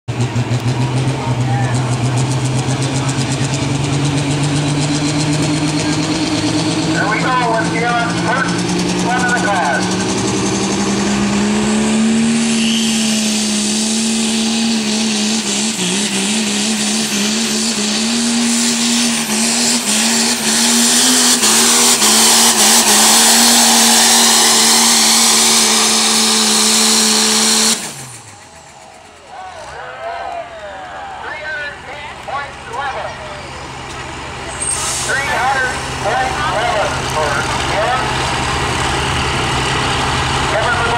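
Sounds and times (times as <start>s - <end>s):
diesel truck engine at high revs: 0.0s - 40.9s
engine idling: 0.1s - 12.6s, 14.6s - 40.9s
voices: 6.9s - 10.0s, 28.3s - 38.4s, 40.4s - 40.9s.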